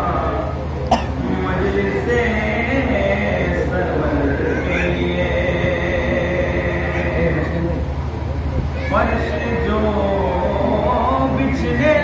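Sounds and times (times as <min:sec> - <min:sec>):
low electrical hum: 0:00.0 - 0:12.0
sharp cough: 0:00.9 - 0:01.2.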